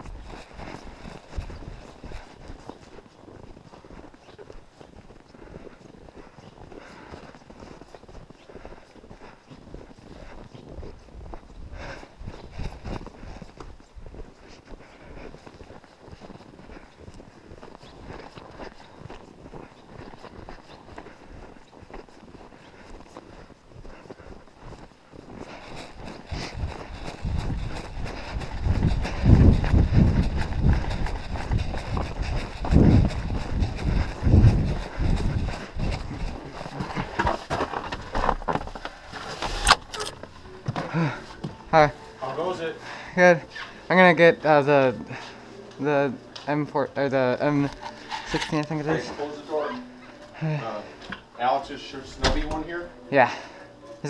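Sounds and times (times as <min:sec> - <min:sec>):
wind buffeting microphone: 0:00.0 - 0:02.8, 0:25.8 - 0:37.2
footsteps crunching in snow: 0:00.0 - 0:51.4.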